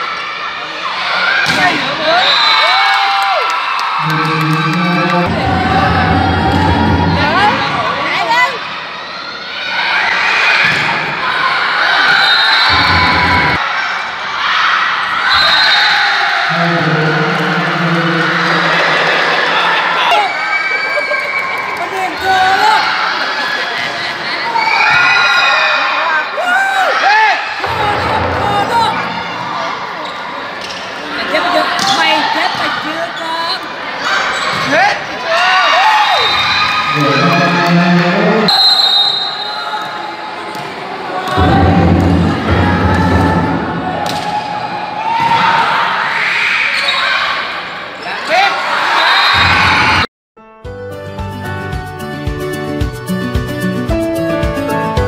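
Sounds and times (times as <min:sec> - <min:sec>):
crowd of spectators: 0:00.0 - 0:50.1.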